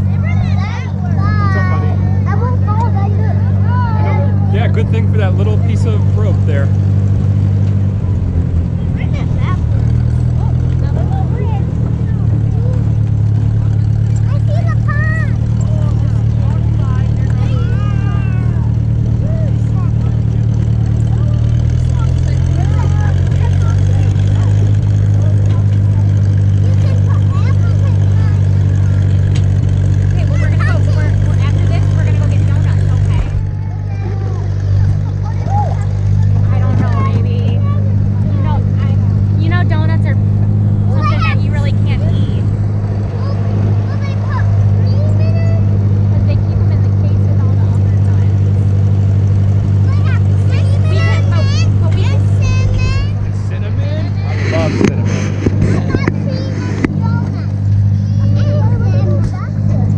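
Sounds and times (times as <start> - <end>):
tractor engine running: 0.0 - 59.9.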